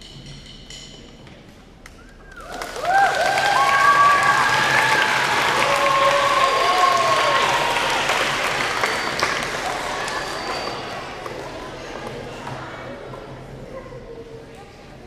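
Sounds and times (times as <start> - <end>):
high voices whooping: 2.2 - 11.0
children clapping and cheering: 2.4 - 11.8.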